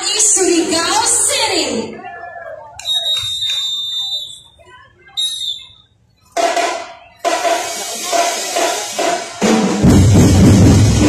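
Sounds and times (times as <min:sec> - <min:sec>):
shrill whistle blasts: 0:02.8 - 0:06.0
drums and music: 0:06.3 - 0:11.0.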